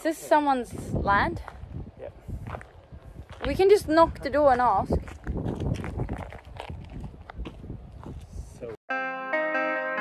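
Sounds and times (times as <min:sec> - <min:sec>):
footsteps on dirt track: 0:00.0 - 0:08.8
wind buffeting microphone: 0:00.0 - 0:08.8.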